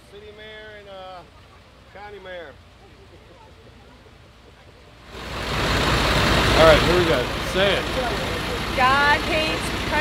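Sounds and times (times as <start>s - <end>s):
tow truck engine idling: 0.0s - 10.0s.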